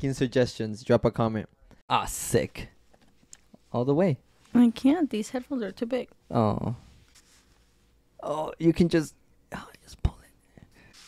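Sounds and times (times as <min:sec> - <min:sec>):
soft whispering: 0:09.5 - 0:11.0.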